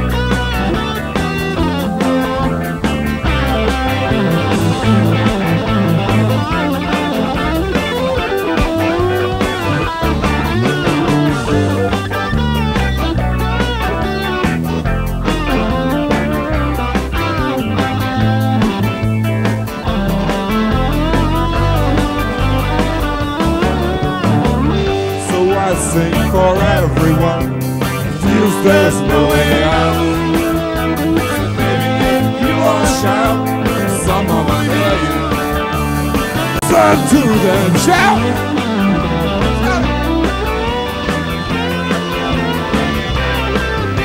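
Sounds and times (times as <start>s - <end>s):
bass guitar: 0.0s - 44.0s
drums: 0.0s - 44.0s
electric guitar lead with bent notes: 0.0s - 44.0s.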